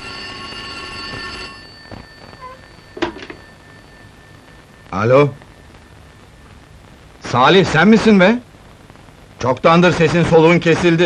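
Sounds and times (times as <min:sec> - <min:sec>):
telephone bell ringing: 0:00.0 - 0:05.4.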